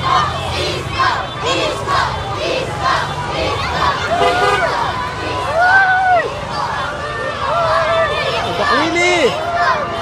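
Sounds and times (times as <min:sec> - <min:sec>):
children shouting: 0:00.0 - 0:10.0
crowd cheering and shouting: 0:00.0 - 0:10.0.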